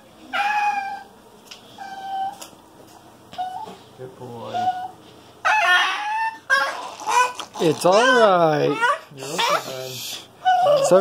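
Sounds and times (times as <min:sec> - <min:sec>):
small dog whining: 0:00.3 - 0:01.1, 0:01.7 - 0:02.5, 0:03.3 - 0:03.8, 0:04.4 - 0:11.0.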